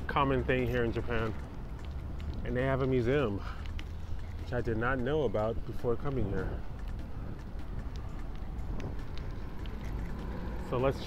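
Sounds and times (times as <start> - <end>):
steady low rumble: 0.0 - 11.0
faint ticks: 0.6 - 11.0.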